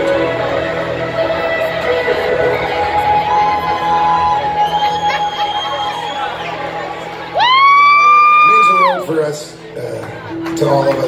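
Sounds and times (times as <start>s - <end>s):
crowd and stage sound: 0.0s - 11.0s.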